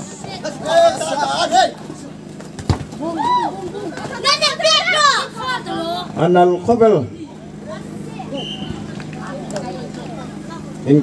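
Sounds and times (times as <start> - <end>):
people shouting: 0.0 - 1.9, 3.0 - 6.2.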